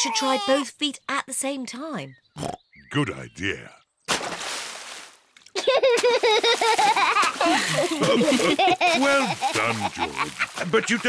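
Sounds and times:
child giggling and squealing: 0:00.0 - 0:00.6, 0:05.6 - 0:10.5.

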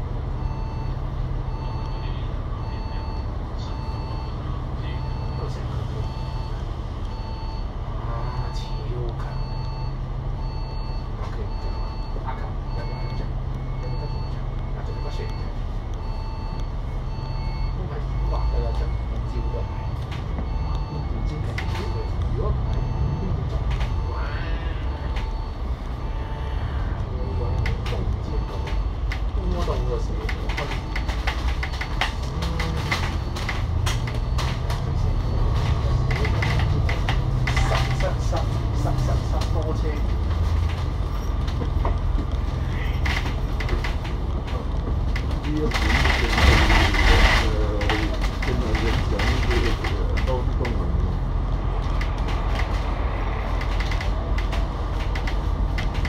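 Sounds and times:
bus body rattles and clicks: 0:00.0 - 0:24.1, 0:24.9 - 0:26.0, 0:27.0 - 0:56.0
diesel bus engine: 0:00.0 - 0:56.0
short beeps: 0:00.4 - 0:30.0.

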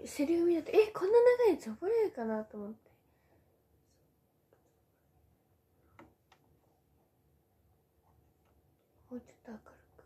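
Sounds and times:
young woman's soft voice: 0:09.1 - 0:10.0.

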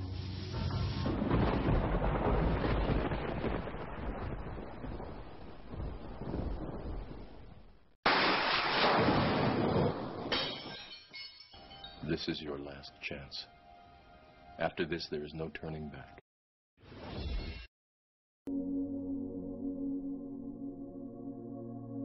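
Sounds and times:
thunder crack and rumble: 0:00.9 - 0:08.0, 0:08.9 - 0:10.3.

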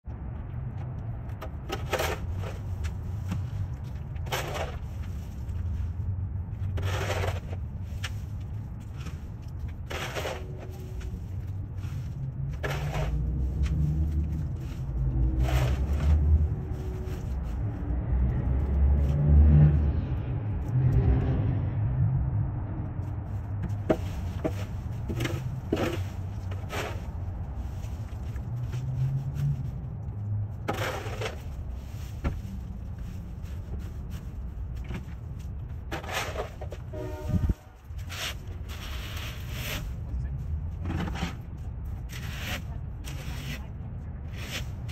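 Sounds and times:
street traffic rumble: 0:00.0 - 0:44.9
scrapes and rustles: 0:00.8 - 0:19.4, 0:23.0 - 0:44.9
shovel scraping dry leaves: 0:09.8 - 0:11.4, 0:14.5 - 0:17.6, 0:37.8 - 0:39.9
car engine passing: 0:12.2 - 0:23.9.

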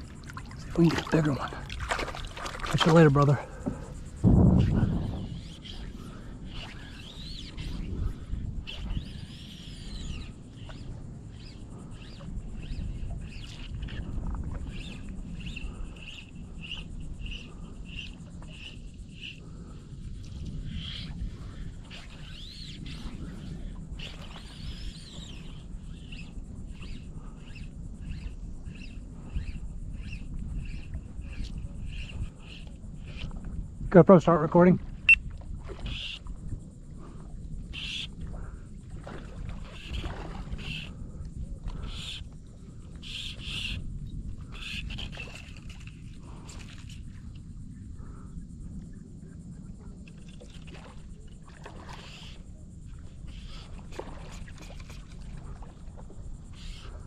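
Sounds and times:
water: 0:00.0 - 0:57.0.

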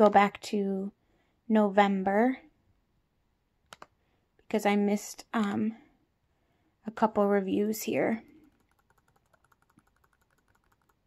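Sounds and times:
rapid clicking of scrolling: 0:08.4 - 0:11.0.

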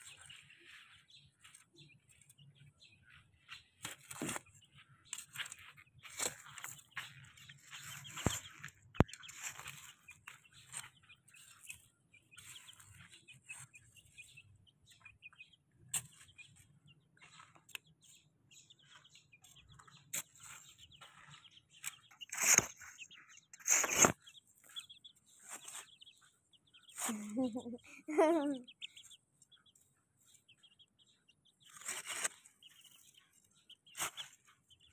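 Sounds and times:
chicks peeping: 0:00.0 - 0:34.9
chicks scratching in dirt: 0:00.0 - 0:34.9.

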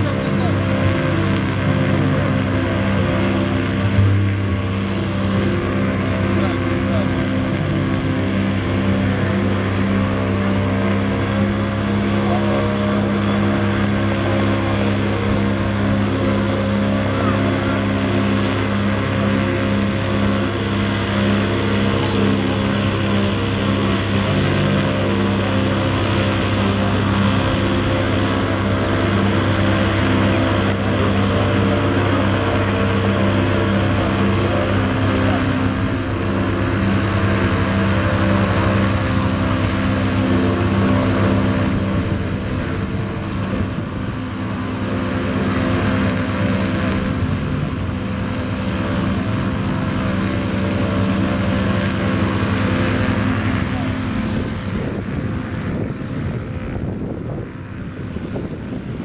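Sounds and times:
helicopter engine and rotors droning: 0:00.0 - 0:59.0.

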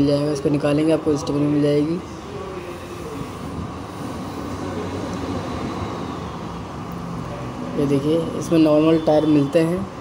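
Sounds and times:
rumbling room background noise: 0:00.0 - 0:10.0.

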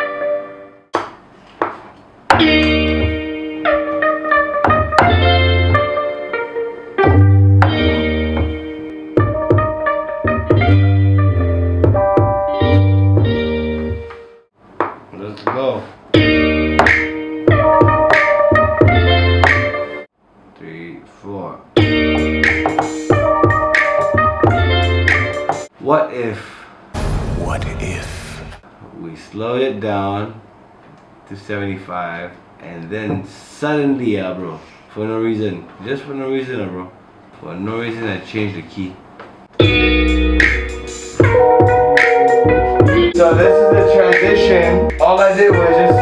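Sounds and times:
electric guitar chords: 0:02.4 - 0:14.3, 0:39.6 - 0:46.0
heavy bass line: 0:27.0 - 0:28.6
hip-hop beat: 0:27.0 - 0:28.6, 0:39.6 - 0:46.0.

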